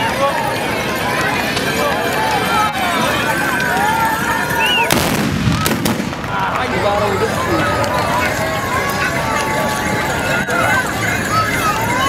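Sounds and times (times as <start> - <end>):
crowd shouting and calling: 0.0 - 12.0
horses galloping on dirt: 0.0 - 12.0.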